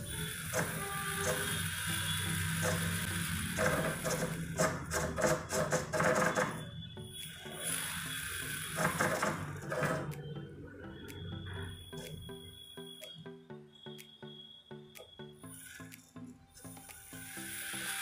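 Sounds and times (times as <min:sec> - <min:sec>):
electric motor whirring: 0:00.0 - 0:04.5, 0:07.2 - 0:09.7, 0:17.0 - 0:18.0
background music: 0:00.0 - 0:18.0
clicks: 0:08.8 - 0:17.4.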